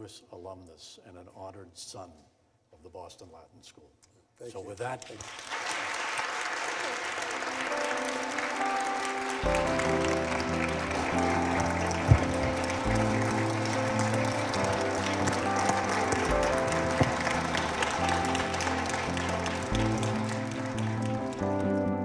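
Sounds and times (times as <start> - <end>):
audience applauding: 5.0 - 22.0
soft background music: 7.0 - 22.0.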